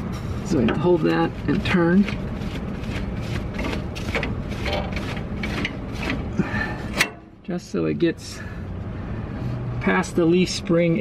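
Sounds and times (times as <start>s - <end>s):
metallic clicks and scrapes: 0.5s - 6.3s.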